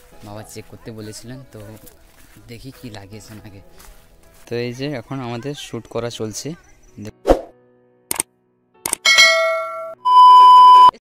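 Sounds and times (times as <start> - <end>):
short clicks: 8.1 - 9.0
ringing metallic ding: 9.0 - 10.5
steady high beep: 9.1 - 11.0.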